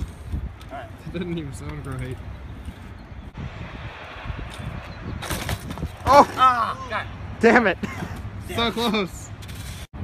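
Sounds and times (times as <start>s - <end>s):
wind rumble on microphone: 0.0s - 6.3s
bike clattering on ground: 5.2s - 6.1s.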